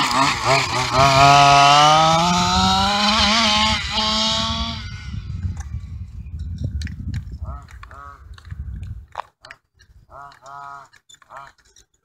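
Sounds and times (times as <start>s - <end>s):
high-pitched engine buzz: 0.0s - 6.3s
low rumble: 2.2s - 9.1s.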